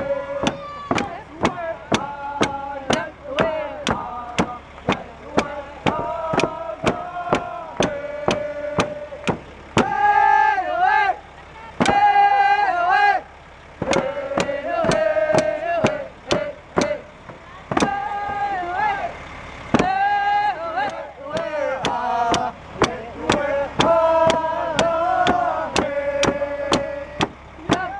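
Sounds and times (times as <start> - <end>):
voices singing: 0.0 - 27.9
hand drums beating: 0.4 - 9.9, 13.8 - 18.5.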